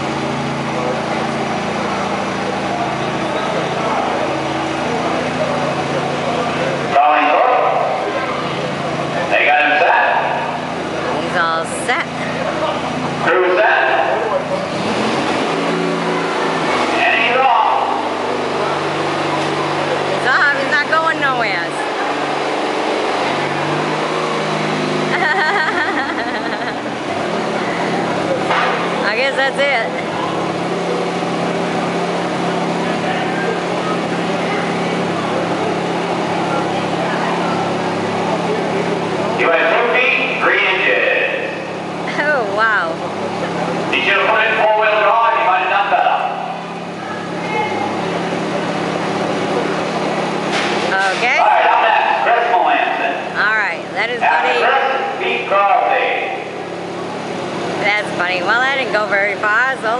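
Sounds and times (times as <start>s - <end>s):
crowd chatter: 0.0s - 59.9s
garden tractor engine under load: 0.0s - 59.9s
onlookers talking: 0.0s - 59.9s.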